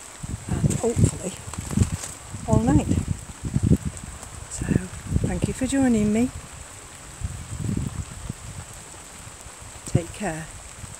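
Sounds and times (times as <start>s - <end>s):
light rain falling: 0.0s - 10.9s
wind buffeting microphone: 0.0s - 10.9s.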